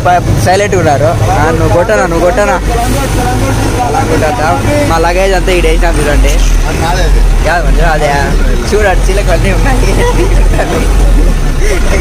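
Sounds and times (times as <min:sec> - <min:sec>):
bus engine humming: 0:00.0 - 0:12.0
people talking loudly: 0:00.0 - 0:12.0.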